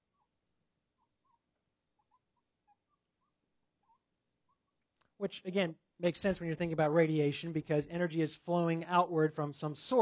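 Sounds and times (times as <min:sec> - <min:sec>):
marker squeaking on whiteboard: 0:00.0 - 0:04.9.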